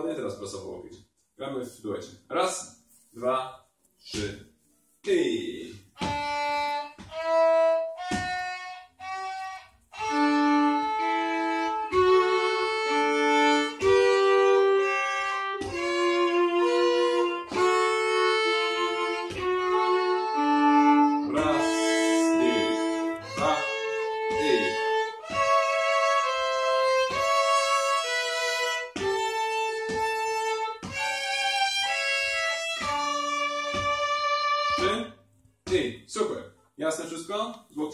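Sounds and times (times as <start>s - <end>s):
bowed violin playing slow tune: 5.6s - 35.2s.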